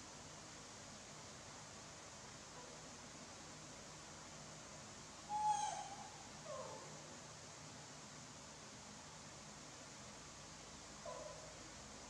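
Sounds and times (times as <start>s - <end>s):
young monkey cooing: 5.3s - 6.9s.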